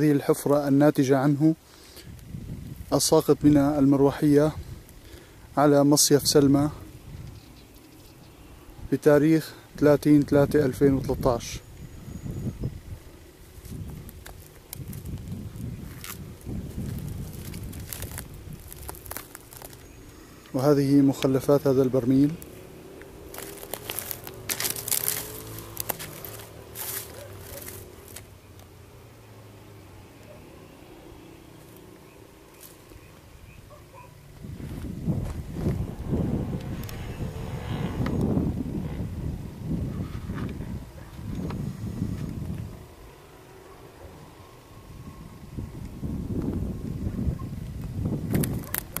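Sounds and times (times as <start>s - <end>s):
wind buffeting microphone: 2.1s - 5.0s, 6.0s - 7.5s, 9.7s - 19.9s, 34.3s - 43.0s, 44.8s - 49.0s
rustling and crackling: 13.2s - 28.7s, 47.7s - 49.0s.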